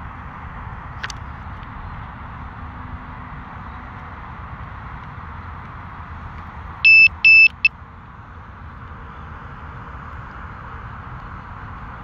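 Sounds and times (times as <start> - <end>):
high electronic warning beeps: 6.8 - 7.7.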